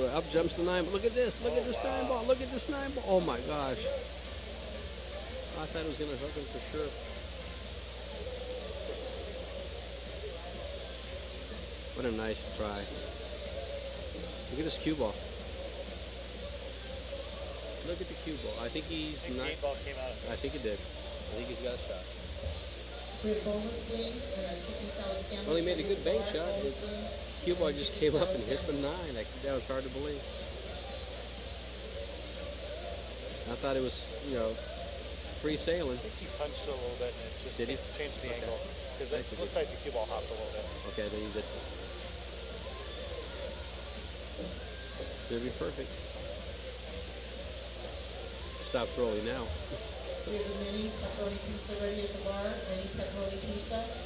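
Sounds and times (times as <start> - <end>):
background music: 0.0 - 54.0
faint background chatter: 0.0 - 54.0
steady low hum: 0.0 - 54.0.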